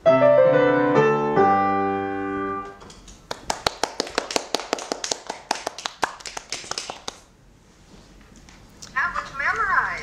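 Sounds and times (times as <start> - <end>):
grand piano chord: 0.0 - 2.8
people clapping: 2.6 - 7.3.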